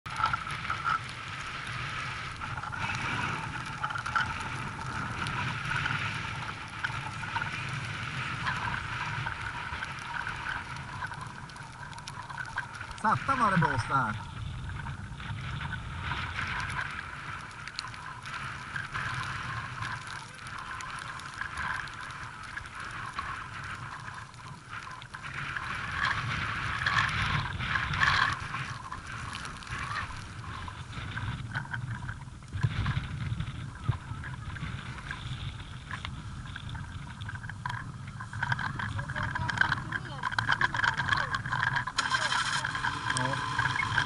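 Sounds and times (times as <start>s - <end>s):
rough low rumble: 0.1s - 44.0s
wind buffeting microphone: 0.1s - 44.0s.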